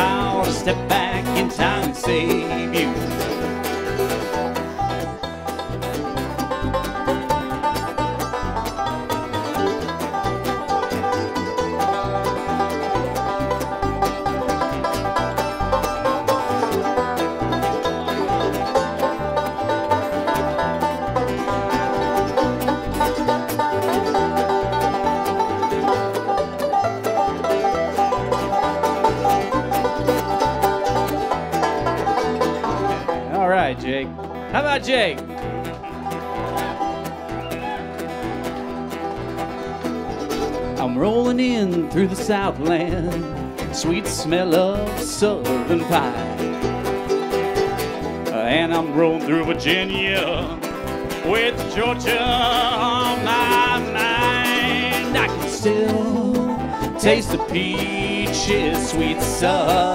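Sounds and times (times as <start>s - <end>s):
acoustic guitar picking: 0.0s - 59.9s
banjo picking: 0.0s - 59.9s
mandolin picking: 0.0s - 59.9s
upright bass line: 0.0s - 59.9s.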